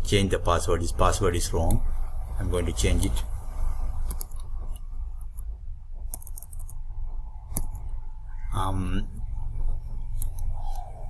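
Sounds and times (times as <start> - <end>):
low background rumble: 0.0 - 11.0
keyboard keys clicking: 6.1 - 6.8.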